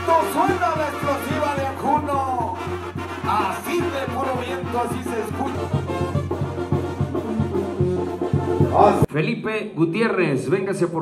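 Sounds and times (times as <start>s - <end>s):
brass band with trumpets: 0.0s - 9.1s.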